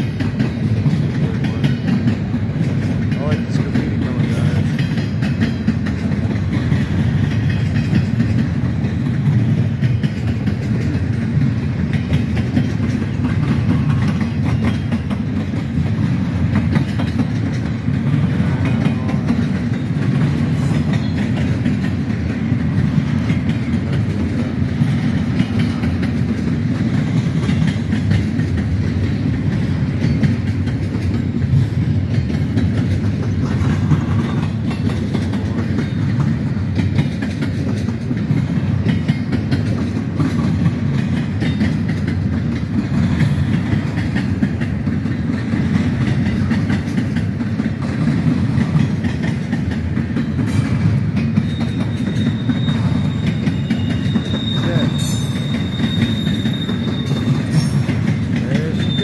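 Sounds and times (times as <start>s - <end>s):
clickety-clack over rail joints: 0.0s - 59.0s
freight train wheels rumbling: 0.0s - 59.0s
high wheel squeal: 51.3s - 57.9s, 58.5s - 59.0s.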